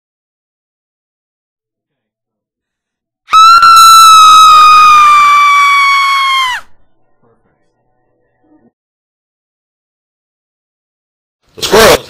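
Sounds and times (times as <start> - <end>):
high-pitched scream: 3.3 - 6.8.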